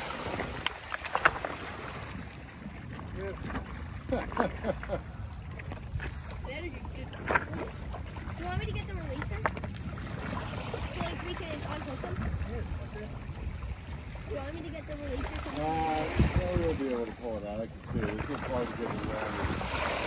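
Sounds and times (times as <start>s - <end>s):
sharp splashes and knocks: 0.0s - 12.4s, 17.9s - 20.0s
water splashing over cobbles: 0.0s - 20.0s
wind rumbling on microphone: 5.3s - 20.0s.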